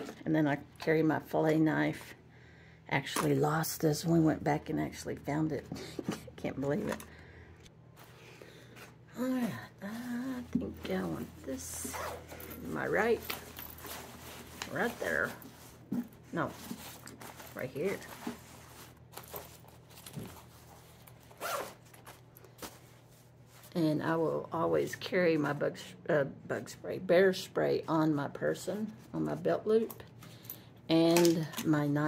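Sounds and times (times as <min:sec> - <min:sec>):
zipper pulled on fabric: 0:11.7 - 0:12.7, 0:21.3 - 0:21.9.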